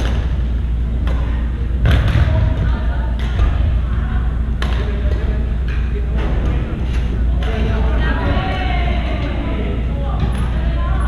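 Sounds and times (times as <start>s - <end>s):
gymnasium room noise: 0.0s - 11.0s.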